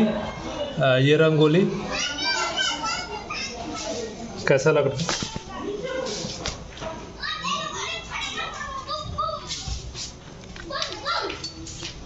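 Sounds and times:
children chattering and calling: 0.0 - 12.0.

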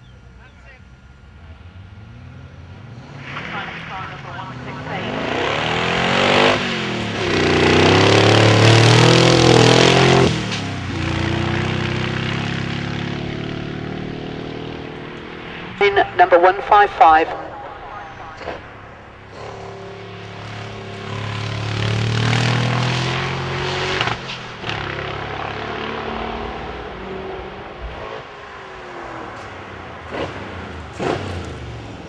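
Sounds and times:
car engine accelerating hard: 0.1 - 16.1, 17.6 - 32.0.

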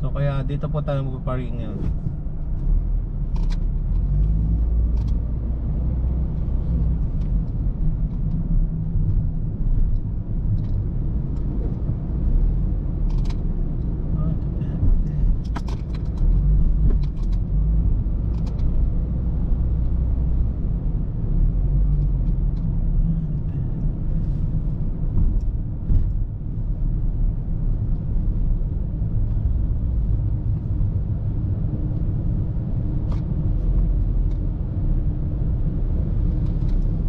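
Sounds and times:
car engine and tyres rumbling: 0.0 - 37.0.

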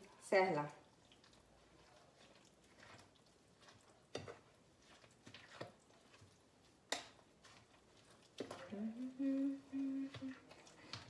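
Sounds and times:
woman humming softly: 8.6 - 10.4.

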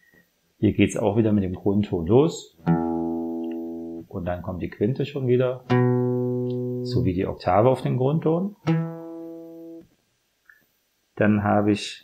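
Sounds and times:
acoustic guitar note plucked: 2.6 - 4.0, 5.6 - 7.2, 8.6 - 9.8.

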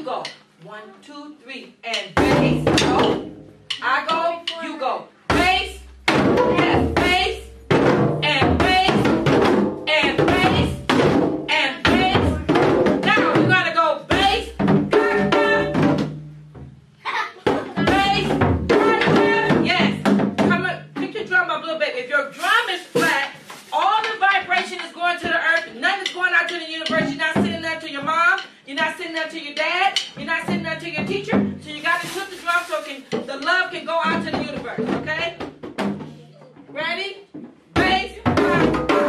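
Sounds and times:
djembe hand drums: 1.9 - 4.6, 5.3 - 21.4, 22.9 - 39.0
voices: 9.9 - 10.8, 11.5 - 15.7.

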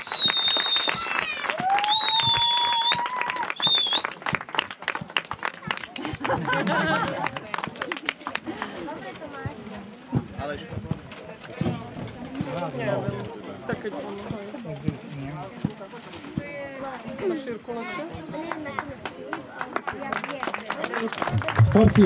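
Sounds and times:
high held whistle tones: 0.0 - 4.1
crowd clapping: 0.0 - 9.0, 18.4 - 22.0.

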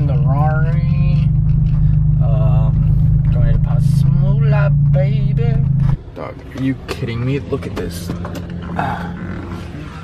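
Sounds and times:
car engine drone and road noise: 0.0 - 10.0.

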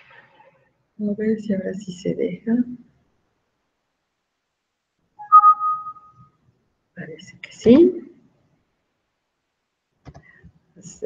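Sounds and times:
computer alert chime: 5.2 - 6.1.

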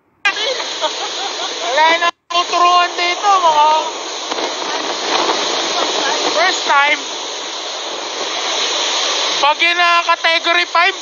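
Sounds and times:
strong wind and driving rain: 0.3 - 11.0.

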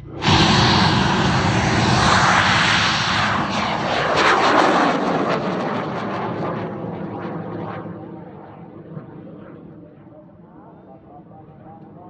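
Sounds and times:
rocket motor roaring: 0.0 - 5.3.

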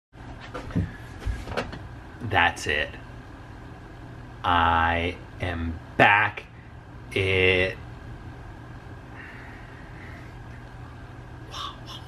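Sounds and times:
low steady hum: 0.2 - 12.0
soft knocks and bumps: 0.4 - 1.8.

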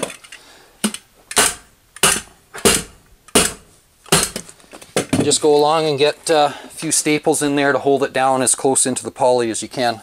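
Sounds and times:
hammer stapler striking: 0.8 - 4.5.

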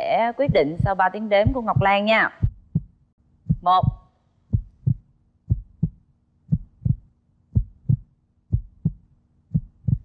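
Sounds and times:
heartbeat thumps: 0.0 - 10.0.

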